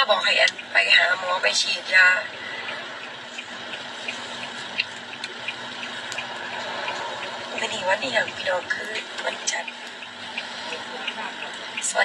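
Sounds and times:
light ticks: 0:02.6 - 0:07.7.

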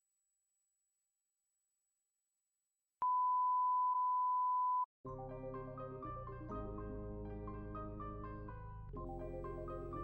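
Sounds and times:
steady test tone beep: 0:03.0 - 0:04.9.

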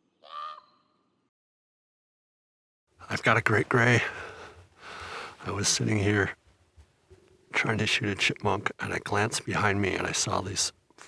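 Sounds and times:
harsh caw-like animal call: 0:00.2 - 0:01.0.

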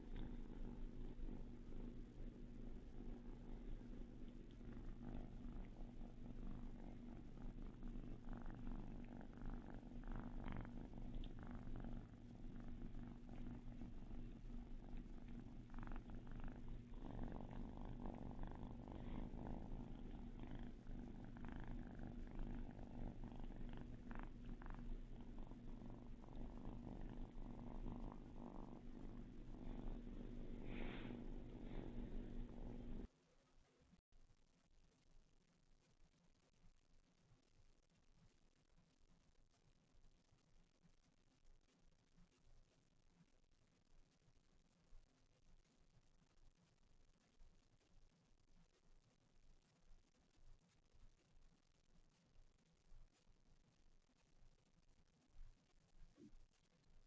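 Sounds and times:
kitten purring: 0:00.0 - 0:33.1, 0:37.3 - 0:57.0
kittens wrestling on blanket: 0:12.7 - 0:33.1.

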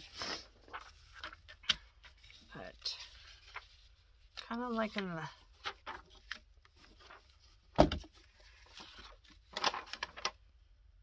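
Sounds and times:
paper rustling: 0:00.0 - 0:10.4.

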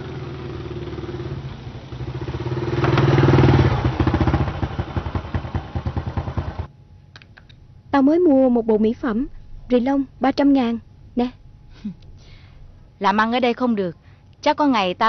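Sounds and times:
small motorbike engine running: 0:00.0 - 0:06.7.

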